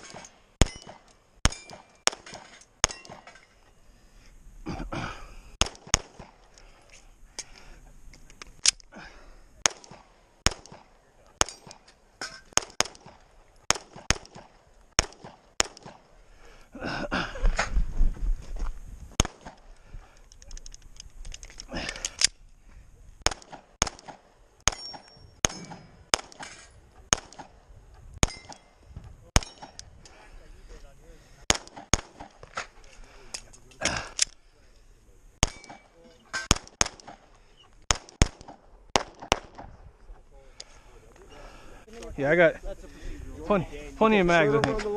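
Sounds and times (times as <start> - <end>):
pistol shots: 0.0 - 3.4, 5.6 - 6.4, 9.6 - 11.8, 12.5 - 16.0, 19.2 - 19.6, 23.2 - 27.6, 28.2 - 28.7, 31.5 - 32.5, 35.4 - 37.3, 37.9 - 39.7.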